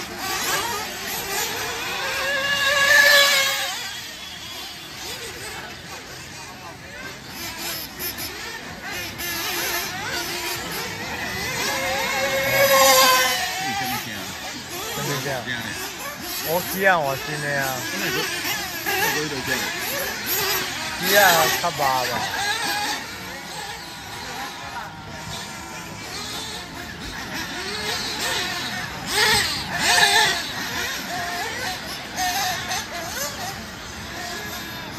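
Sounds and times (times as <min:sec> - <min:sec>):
radio-controlled car motors whining: 0:00.0 - 0:34.9.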